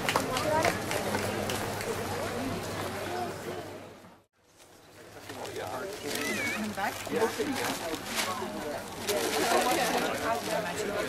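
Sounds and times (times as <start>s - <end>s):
indistinct chatter of people: 0.0s - 11.0s.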